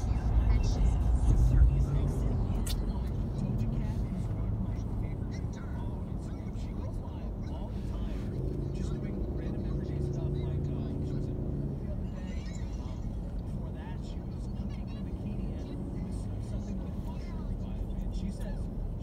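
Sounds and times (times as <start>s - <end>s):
engine and tyre rumble: 0.0s - 19.0s.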